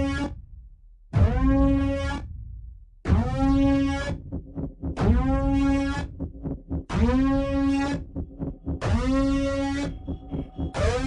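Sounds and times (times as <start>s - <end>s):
rumbling bass: 0.0s - 11.0s.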